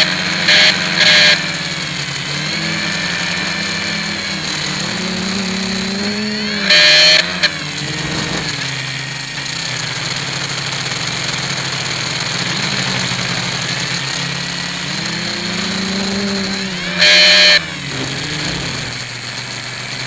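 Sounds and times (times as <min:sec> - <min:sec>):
loud burst of noise: 0:00.0 - 0:10.7, 0:12.2 - 0:20.0
drone propellers whining: 0:00.0 - 0:20.0.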